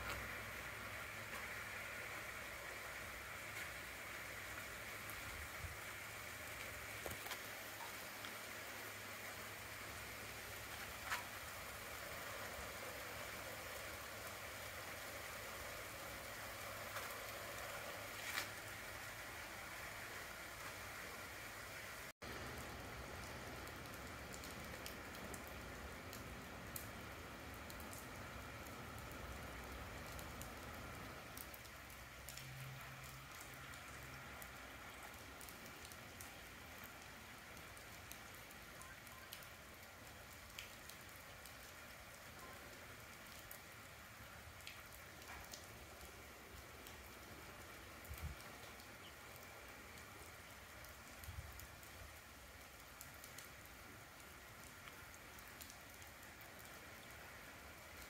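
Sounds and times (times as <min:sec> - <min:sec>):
light rain: 0:00.0 - 0:58.0.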